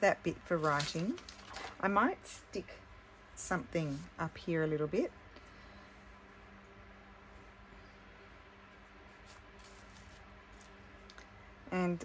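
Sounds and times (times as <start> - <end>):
low steady hum: 0.0 - 12.0
paper rustling in plastic box: 0.6 - 1.8.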